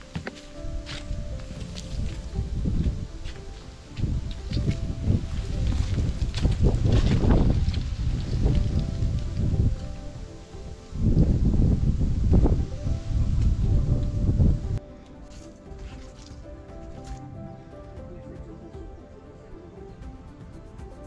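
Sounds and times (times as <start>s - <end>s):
quiet background music: 0.0s - 21.0s
wind buffeting microphone: 0.0s - 21.0s.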